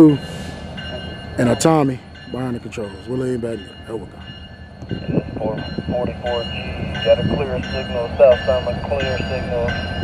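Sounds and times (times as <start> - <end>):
diesel locomotive engine rumbling: 0.0 - 10.0.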